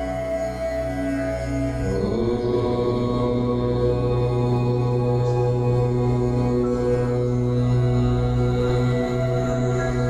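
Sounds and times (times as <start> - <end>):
chanted mantra in long notes: 0.0 - 10.0
steady low drone: 0.0 - 10.0.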